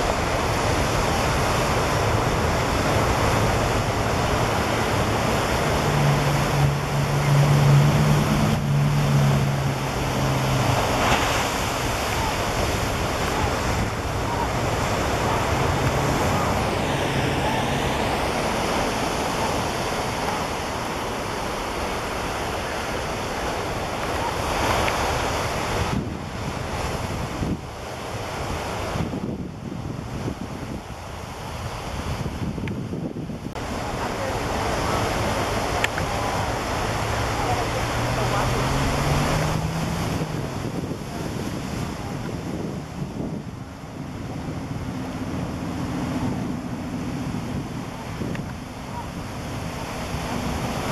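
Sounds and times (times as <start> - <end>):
surf breaking on a beach: 0.0 - 50.9
wind buffeting microphone: 0.0 - 50.9.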